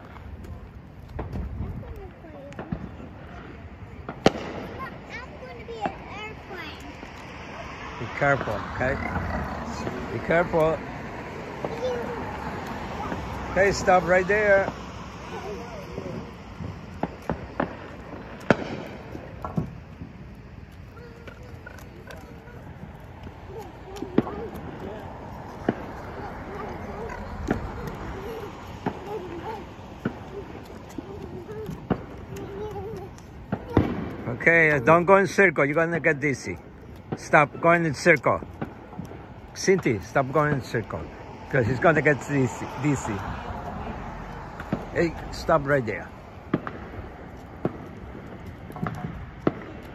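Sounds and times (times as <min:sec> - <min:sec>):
faint children's voices: 0:00.0 - 0:41.3
outdoor background noise: 0:00.0 - 0:49.9
firecrackers banging: 0:01.0 - 0:49.9.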